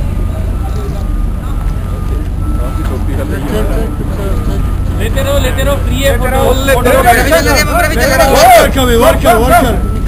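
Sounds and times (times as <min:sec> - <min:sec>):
people talking indistinctly: 0:00.0 - 0:10.0
steady low rumble: 0:00.0 - 0:10.0.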